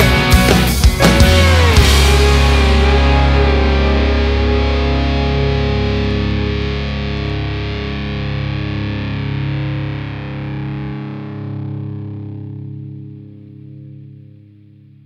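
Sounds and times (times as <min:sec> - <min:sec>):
rock band final chord: 0:00.0 - 0:14.1
distorted electric guitar: 0:00.0 - 0:15.0.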